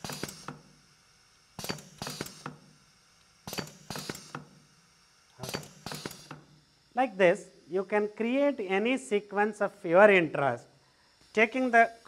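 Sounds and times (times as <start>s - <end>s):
pneumatic pistons clicking and knocking: 0.0s - 12.0s.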